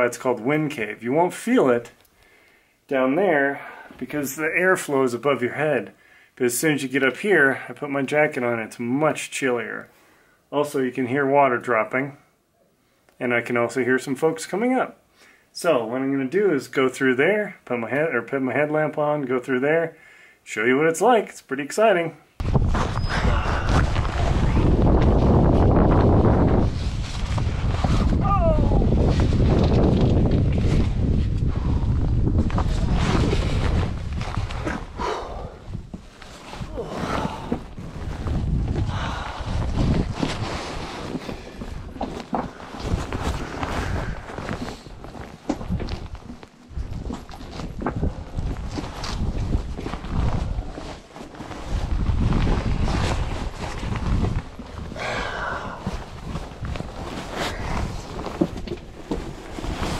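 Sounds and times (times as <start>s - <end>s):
clothing rubbing against camera: 22.4s - 35.0s, 35.7s - 55.0s, 55.7s - 59.9s
heavy low rubbing rumble: 22.4s - 35.0s.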